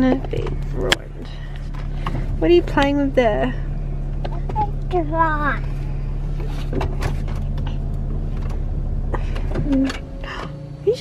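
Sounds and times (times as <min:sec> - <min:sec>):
clicks and knocks on dashboard: 0:00.0 - 0:03.4, 0:04.1 - 0:05.0, 0:06.3 - 0:10.6
car engine idling: 0:00.0 - 0:11.0.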